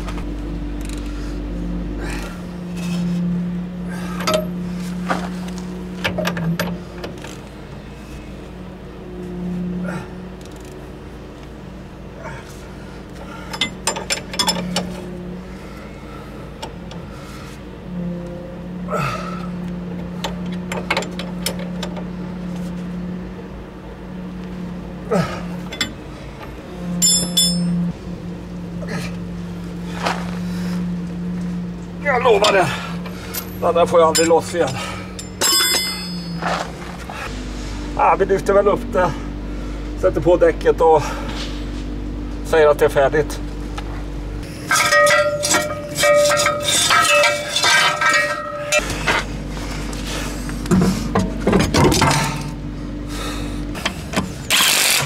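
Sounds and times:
steady low hum: 0:00.0 - 0:54.8
metallic clinks of hand tools: 0:27.0 - 0:27.7, 0:35.2 - 0:36.4, 0:44.6 - 0:48.8
metal jangle: 0:27.0 - 0:27.8, 0:33.2 - 0:36.6, 0:44.6 - 0:49.2.

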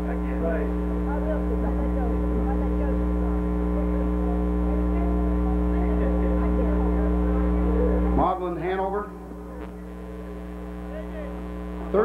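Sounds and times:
electrical mains hum: 0:00.0 - 0:12.0
faint crowd chatter: 0:00.0 - 0:12.0.

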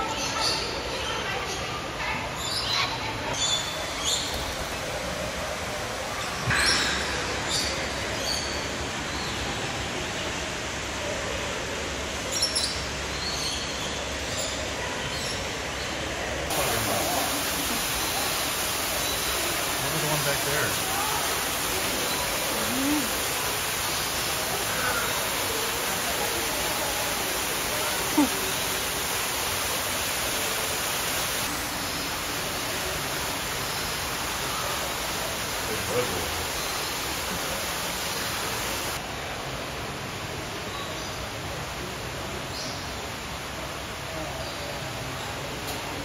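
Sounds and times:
murmur of voices: 0:14.6 - 0:23.7, 0:24.4 - 0:29.0.

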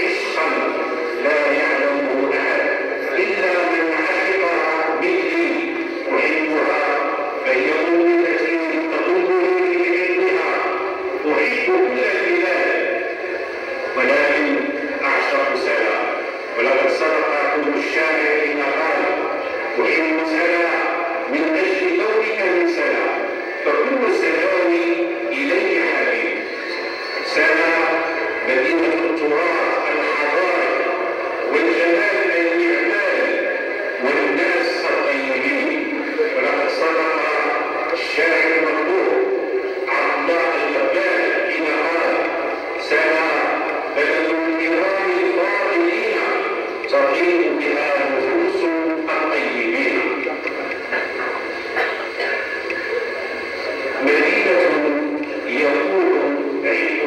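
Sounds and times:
man reciting through loudspeaker: 0:00.0 - 0:57.0.

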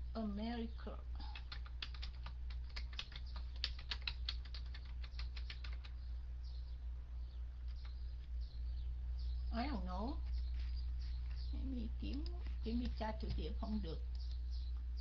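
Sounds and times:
low hum: 0:00.0 - 0:15.0.

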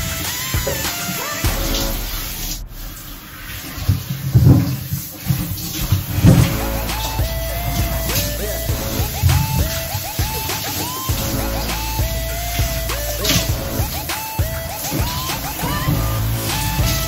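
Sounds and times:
melody over pulsing beat: 0:00.0 - 0:03.4, 0:06.2 - 0:17.0.

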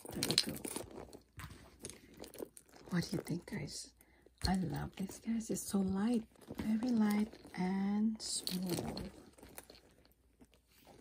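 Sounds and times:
bag clicks and rustles: 0:00.0 - 0:11.0.

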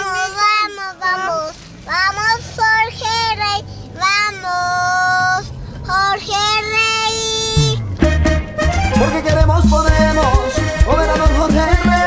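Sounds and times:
girl singing unaccompanied: 0:00.0 - 0:08.0.

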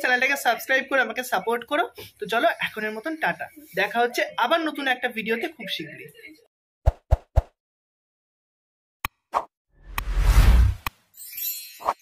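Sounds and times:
whoosh: 0:09.8 - 0:10.9.

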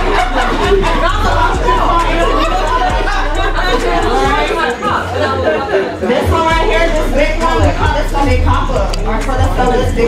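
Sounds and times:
babble of overlapping voices: 0:00.0 - 0:10.0
background music with bass: 0:00.0 - 0:10.0.

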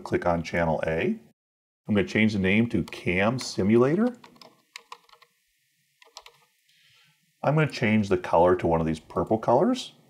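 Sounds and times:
soft keystrokes on a keyboard: 0:02.8 - 0:05.3, 0:06.0 - 0:06.5.

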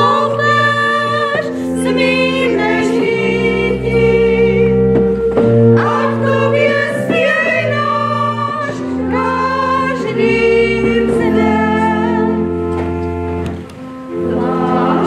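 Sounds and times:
group of voices singing: 0:00.0 - 0:12.5, 0:13.9 - 0:15.0
pipe organ chords: 0:00.0 - 0:15.0.

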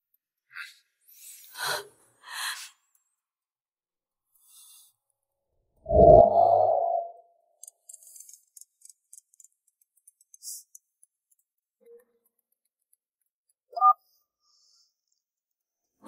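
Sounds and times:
short rising pitched sound: 0:05.9 - 0:07.2.

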